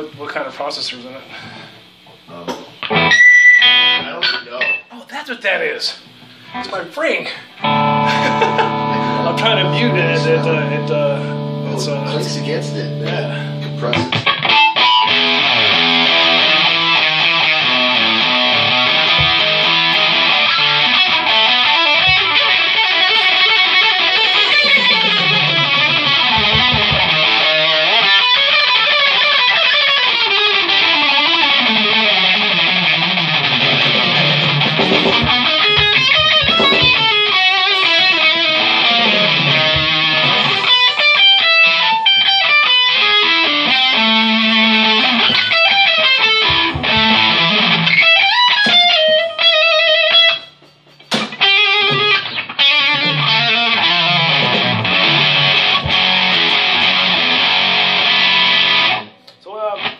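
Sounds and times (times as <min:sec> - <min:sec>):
electric guitar through amplifier: 0:01.3 - 0:04.8, 0:07.5 - 0:59.9.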